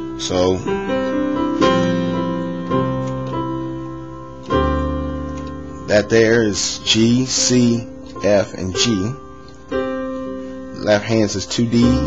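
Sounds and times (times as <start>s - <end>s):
keyboard playing piano chords: 0.0s - 12.0s.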